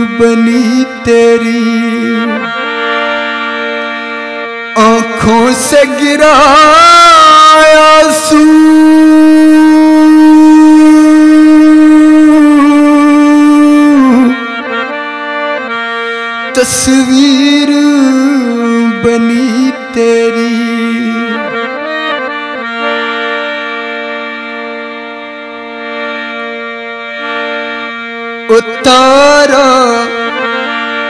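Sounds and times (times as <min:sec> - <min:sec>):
held instrumental chord: 0:00.0 - 0:31.0.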